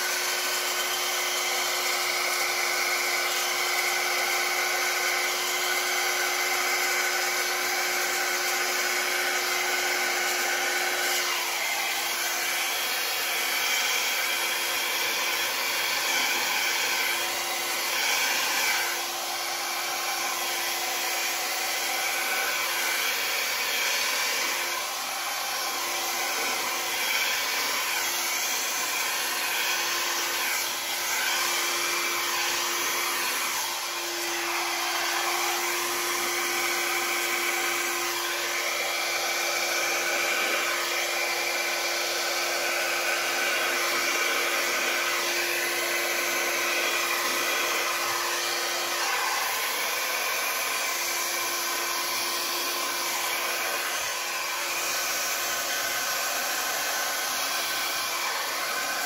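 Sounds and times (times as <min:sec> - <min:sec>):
hair dryer blowing air: 0:00.0 - 0:59.0.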